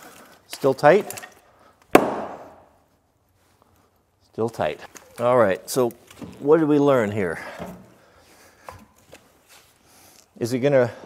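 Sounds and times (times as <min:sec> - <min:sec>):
axe splitting kindling: 0:00.6 - 0:02.7.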